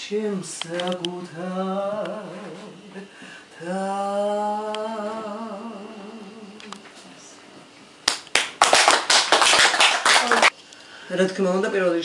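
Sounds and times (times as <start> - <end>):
small group applauding: 8.0 - 10.5.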